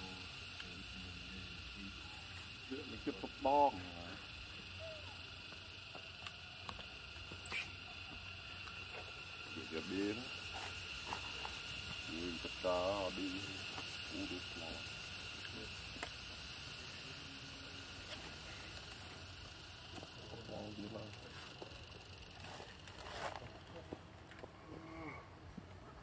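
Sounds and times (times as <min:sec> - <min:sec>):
high-pitched background hum: 0:00.0 - 0:26.0
wavering vocal calls: 0:01.8 - 0:05.6.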